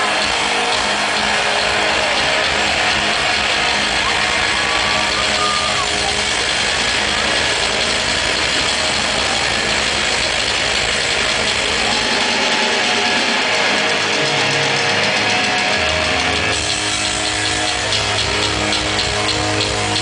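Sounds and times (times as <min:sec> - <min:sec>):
amplified rock band: 0:00.0 - 0:20.0
crowd noise: 0:00.0 - 0:20.0.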